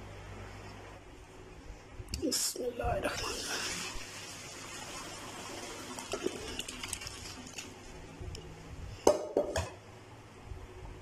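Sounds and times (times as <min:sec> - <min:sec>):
water pouring into a colander: 0:03.1 - 0:07.8.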